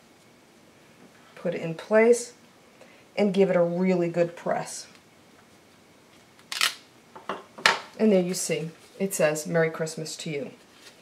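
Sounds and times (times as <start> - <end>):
paper rustling: 10.6 - 11.0.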